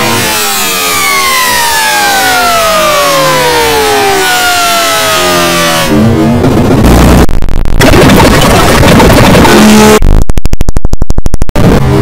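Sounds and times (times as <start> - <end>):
falling pitched tone: 0.0 - 8.4
loud harsh noise: 0.0 - 10.3.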